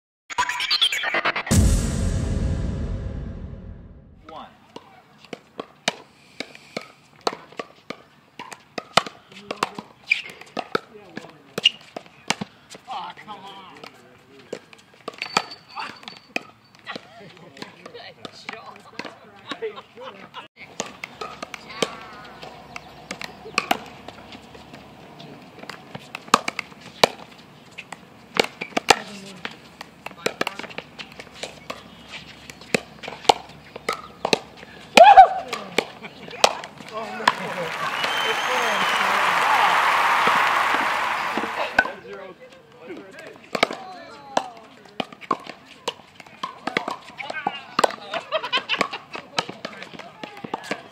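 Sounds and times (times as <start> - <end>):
rush of noise: 0.3 - 4.2
players' voices: 36.9 - 42.2.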